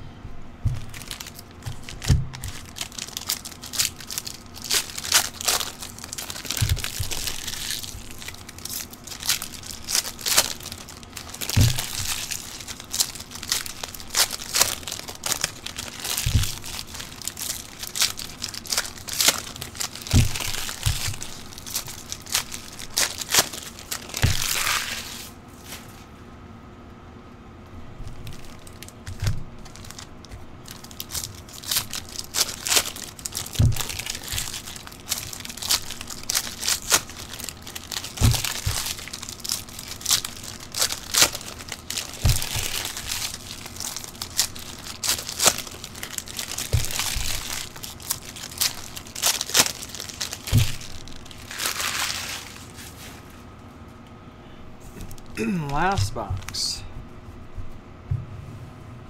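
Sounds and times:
boxes and cards thumping: 0.6 - 25.1, 30.7 - 52.8
card pack wrappers tearing: 0.8 - 25.8, 28.0 - 53.2.

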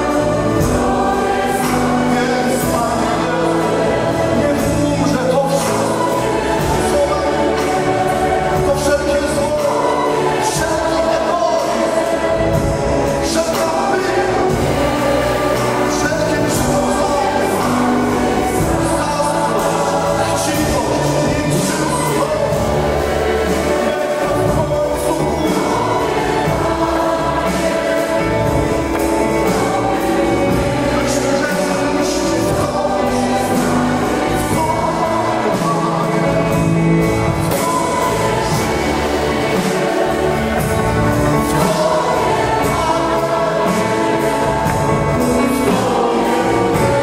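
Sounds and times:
choir singing worship song: 0.0 - 47.0
instruments accompanying: 0.0 - 47.0
strings: 0.0 - 47.0.

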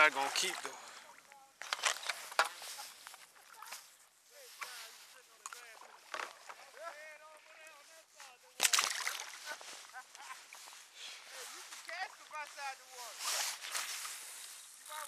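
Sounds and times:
fish handling wet slaps: 8.6 - 9.4
fish splashing into water: 8.6 - 9.6.

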